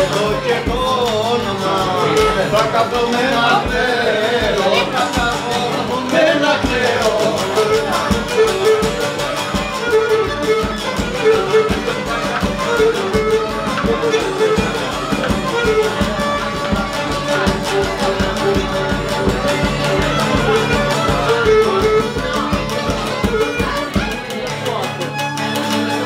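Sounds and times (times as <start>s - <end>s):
bowed lyra melody: 0.0s - 26.0s
hand drum beating: 0.0s - 26.0s
strummed lute: 0.0s - 26.0s.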